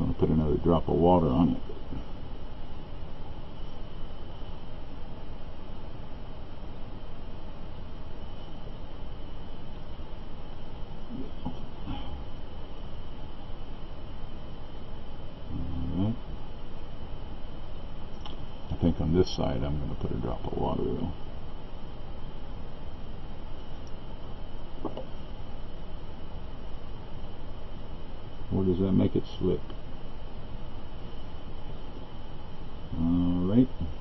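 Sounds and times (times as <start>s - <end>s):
man murmuring: 15.5s - 16.2s.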